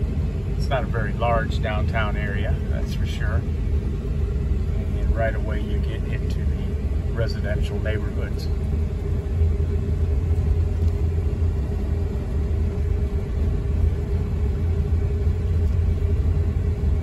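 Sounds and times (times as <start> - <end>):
car road and engine rumble: 0.0 - 17.0
faint steady hum: 0.0 - 17.0.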